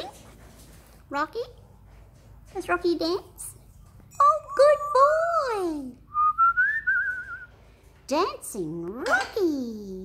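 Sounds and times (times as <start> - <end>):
parrot whistle and trill: 6.1 - 7.5.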